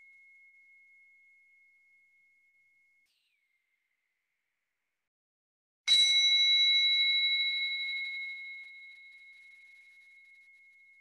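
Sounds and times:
singing bowl ringing: 0:00.0 - 0:03.0, 0:05.9 - 0:11.0.

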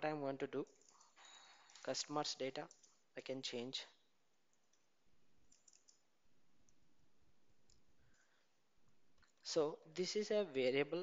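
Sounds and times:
faint keyboard typing: 0:00.6 - 0:03.1, 0:04.4 - 0:09.5.

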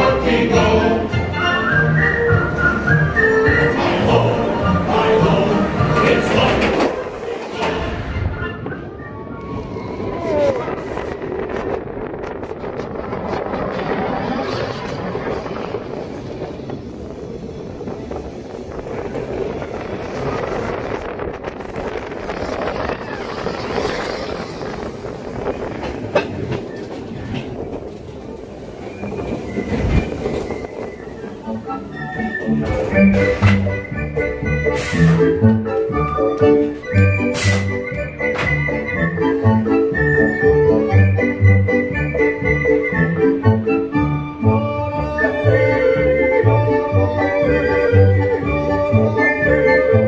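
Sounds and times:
roller coaster wheels rumbling: 0:00.0 - 0:50.0.

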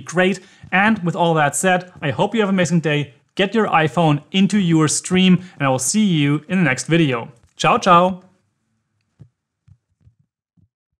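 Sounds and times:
soft low thumps: 0:00.4 - 0:02.3, 0:09.2 - 0:10.3.

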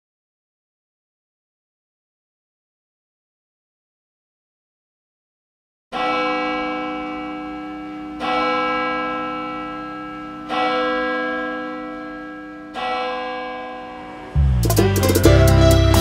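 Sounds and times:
church bell tolling: 0:05.9 - 0:14.6.

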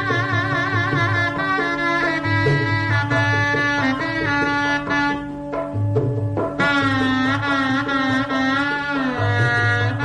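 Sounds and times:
shehnai melody: 0:00.0 - 0:10.0.

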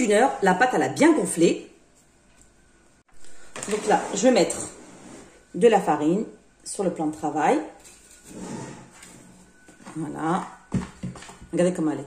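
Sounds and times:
clay bowl scraping on worktop: 0:07.8 - 0:10.6.

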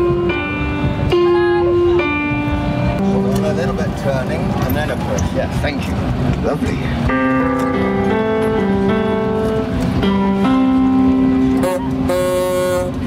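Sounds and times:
piano chords: 0:00.0 - 0:13.0.

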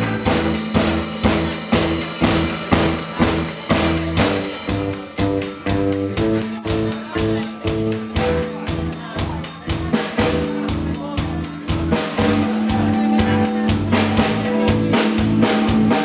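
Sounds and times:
band playing live: 0:00.0 - 0:16.0.

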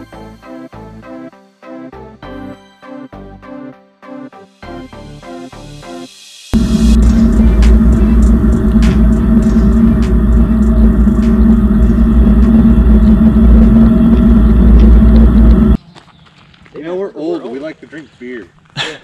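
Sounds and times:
off-road vehicle engine drone: 0:06.6 - 0:15.8.

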